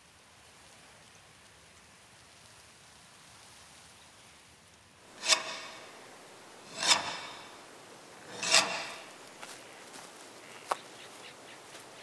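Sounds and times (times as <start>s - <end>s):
rasping scrapes: 5.1s - 6.0s, 6.6s - 9.2s.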